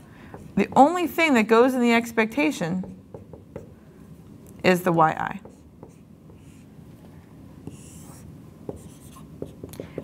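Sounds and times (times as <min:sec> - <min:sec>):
marker writing on whiteboard: 0:00.3 - 0:01.1, 0:02.8 - 0:03.8, 0:05.4 - 0:06.7, 0:07.6 - 0:10.0.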